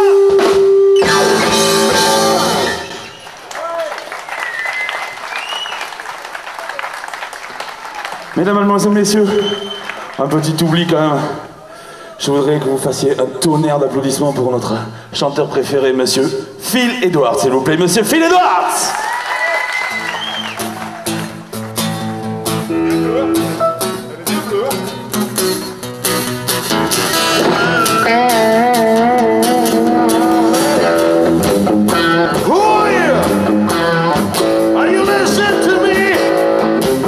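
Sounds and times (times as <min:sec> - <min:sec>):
acoustic guitar: 0:00.0 - 0:03.2, 0:20.0 - 0:37.0
electric guitar: 0:00.0 - 0:03.2, 0:19.9 - 0:37.0
drums: 0:00.0 - 0:03.4, 0:19.9 - 0:37.0.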